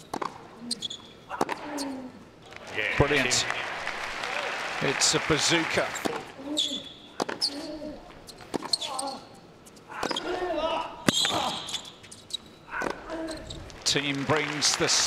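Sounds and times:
players grunting: 2.6 - 6.5.

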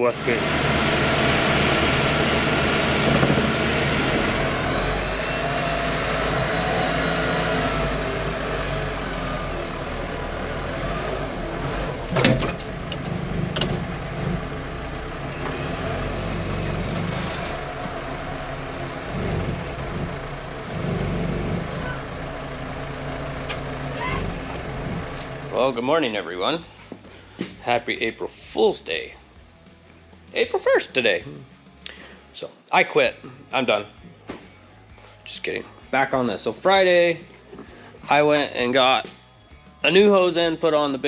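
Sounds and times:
loader engine running under load: 0.0 - 27.5, 33.3 - 41.0.

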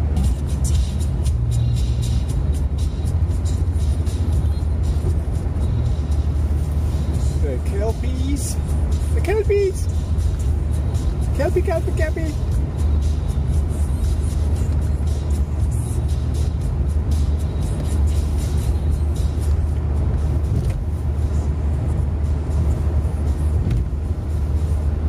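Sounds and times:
car road and engine rumble: 0.0 - 25.0
music playing: 0.0 - 25.0.

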